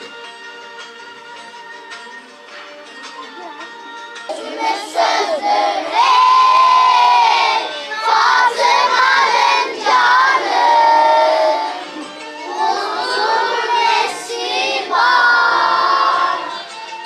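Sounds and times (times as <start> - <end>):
soft backing music: 0.0 - 17.0
children singing a hymn: 4.3 - 16.7.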